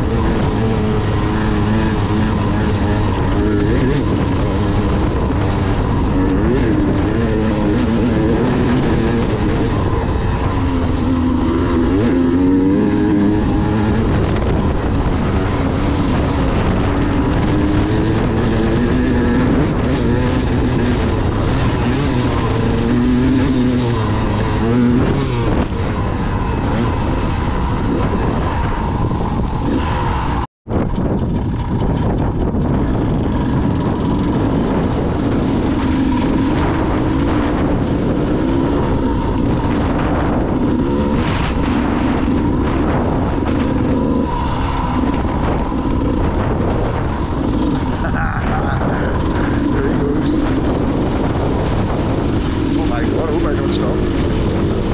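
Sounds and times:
motorcycle engine revving: 0:00.0 - 0:54.9.

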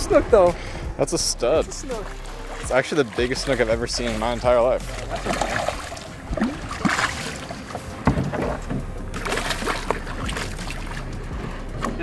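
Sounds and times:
fish thrashing and splashing: 0:01.6 - 0:11.2
knocks: 0:08.0 - 0:08.9.

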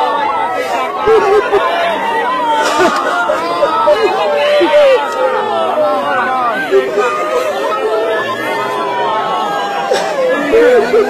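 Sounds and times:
crowd talking and exclaiming: 0:00.0 - 0:11.0.

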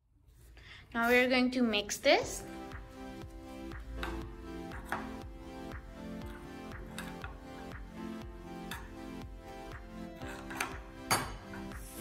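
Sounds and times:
background music with steady beat: 0:00.4 - 0:12.0
spoon stirring dough in glass bowl: 0:10.2 - 0:11.9.

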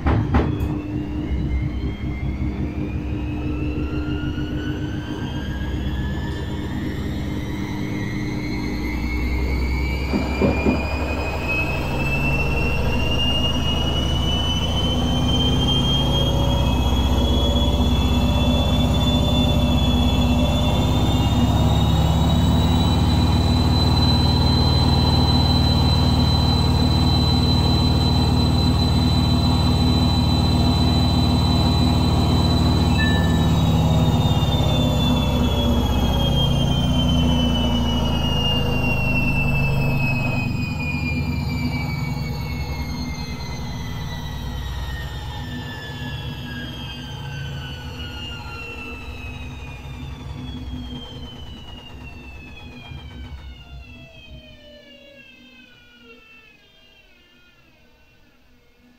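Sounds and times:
washing machine motor whine: 0:00.0 - 0:58.9
washing machine drum rumble: 0:09.7 - 0:16.7, 0:47.6 - 0:54.5.

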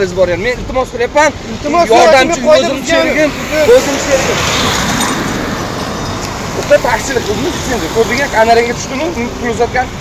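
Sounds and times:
road vehicle passing: 0:01.2 - 0:10.0.

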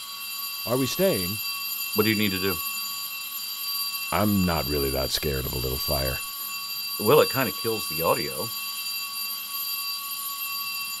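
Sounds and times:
fire alarm tone: 0:00.0 - 0:11.0.

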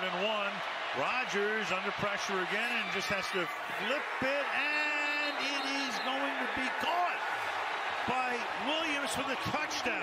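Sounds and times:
sports announcer's voice: 0:00.0 - 0:10.0
stadium crowd noise: 0:00.0 - 0:10.0.

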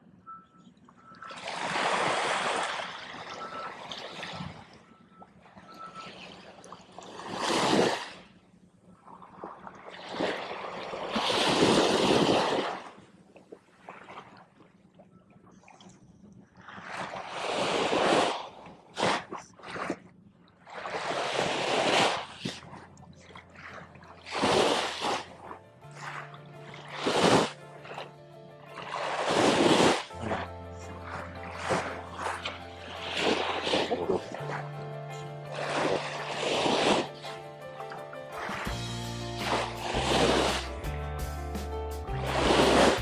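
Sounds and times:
small surf washing up sand: 0:01.4 - 0:04.5, 0:07.0 - 0:08.3, 0:09.9 - 0:13.0, 0:16.9 - 0:19.9, 0:20.7 - 0:22.7, 0:23.6 - 0:28.1, 0:28.8 - 0:40.9
background music with low notes: 0:23.0 - 0:43.0.

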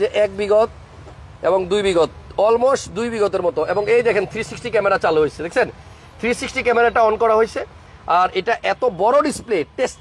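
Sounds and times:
man talking: 0:00.0 - 0:00.8, 0:01.4 - 0:10.0.

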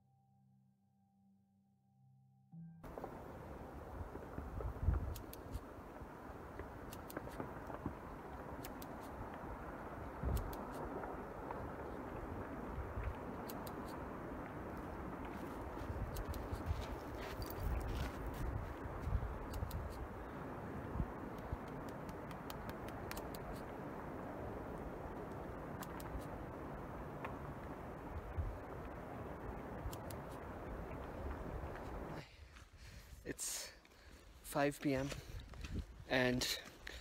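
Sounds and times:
wind on microphone: 0:02.9 - 0:33.3, 0:35.0 - 0:37.0.

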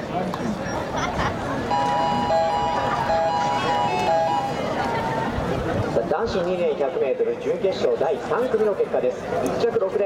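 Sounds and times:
electronic chime over public address: 0:01.7 - 0:05.2.

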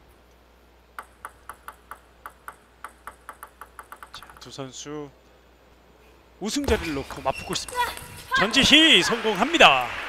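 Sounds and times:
table tennis ball bouncing: 0:01.0 - 0:04.6, 0:06.6 - 0:09.5.

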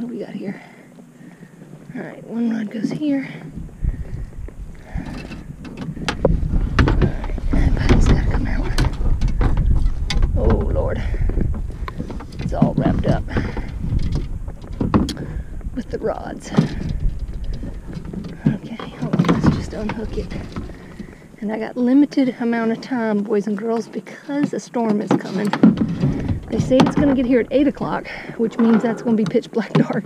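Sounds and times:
low rumble: 0:00.0 - 0:23.1, 0:25.6 - 0:29.4
gear knocking against kayak hull: 0:02.7 - 0:23.1, 0:24.4 - 0:30.0.

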